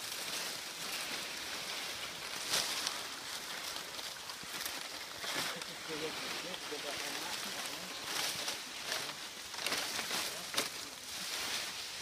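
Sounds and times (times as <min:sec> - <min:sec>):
palm fronds rustling: 0:00.0 - 0:12.0
frond snapping: 0:01.8 - 0:11.7.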